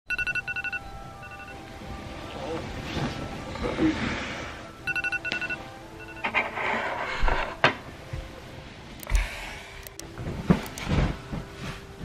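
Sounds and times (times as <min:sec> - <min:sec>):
electronic alarm beeping: 0:00.1 - 0:01.6, 0:04.8 - 0:06.3.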